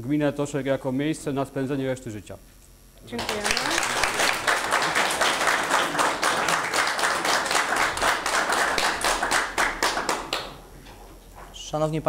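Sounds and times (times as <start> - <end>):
audience applauding: 3.2 - 10.6.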